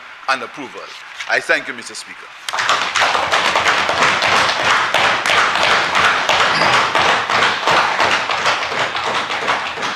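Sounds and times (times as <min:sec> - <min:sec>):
desk taps and hand claps: 0:02.5 - 0:09.9.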